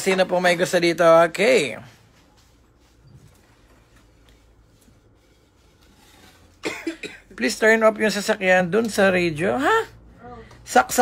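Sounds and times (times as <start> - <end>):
person coughing: 6.6 - 7.4.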